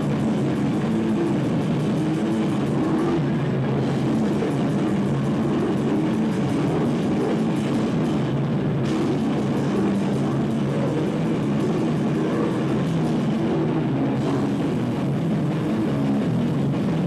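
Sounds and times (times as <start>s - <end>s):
fast cymbal beat: 0.0s - 16.2s
distorted electric guitar: 0.0s - 17.0s
drums: 0.0s - 17.0s.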